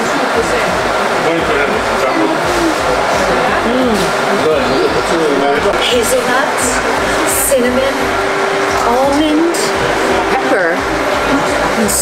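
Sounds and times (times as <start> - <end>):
indistinct chatter: 0.0 - 12.0
steady background hum: 0.0 - 12.0.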